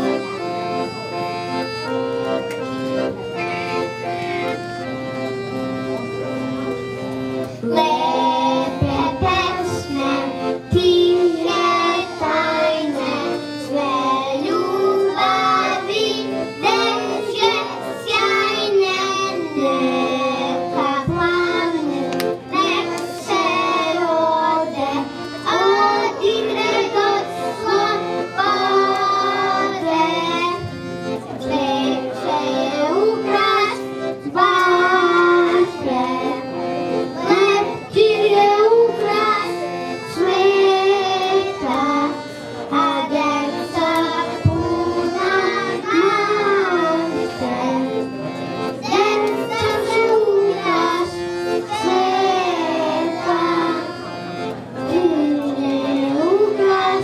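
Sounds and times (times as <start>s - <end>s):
instrumental accompaniment: 0.0s - 57.0s
girl singing into microphone: 7.6s - 15.7s, 16.7s - 30.8s, 37.2s - 48.0s, 54.9s - 57.0s
children singing: 7.6s - 54.1s, 54.8s - 57.0s.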